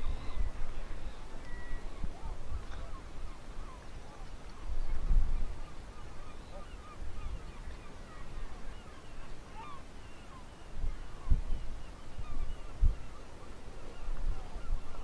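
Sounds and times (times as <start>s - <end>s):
seabirds calling: 0.0s - 15.0s
wind rumbling on microphone: 0.0s - 15.0s.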